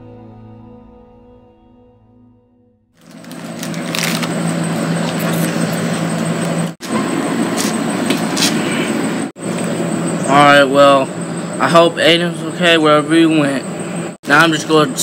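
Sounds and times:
music: 0.0 - 2.9
outdoor background noise: 3.0 - 15.0.

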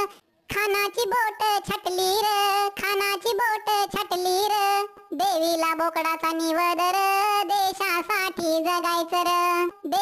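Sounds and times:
high-pitched voice singing: 0.0 - 10.0.

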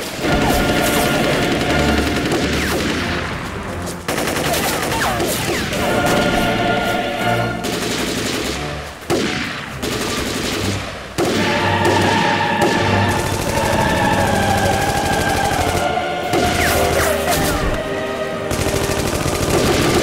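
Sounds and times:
rapid rifle gunfire: 0.0 - 3.3, 4.1 - 6.6, 7.6 - 17.1, 18.5 - 20.0
dramatic orchestral music: 0.0 - 20.0.

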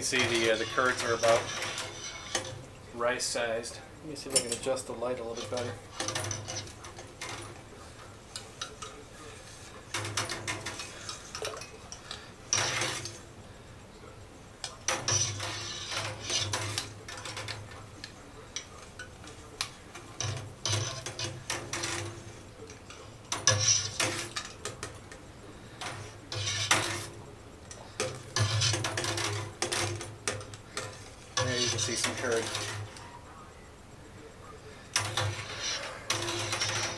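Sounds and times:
metal rod scraping steel pot: 0.0 - 2.7, 4.5 - 7.6, 14.9 - 17.8, 20.0 - 22.3, 23.3 - 24.8, 25.8 - 27.2, 28.0 - 33.0, 35.0 - 36.9.

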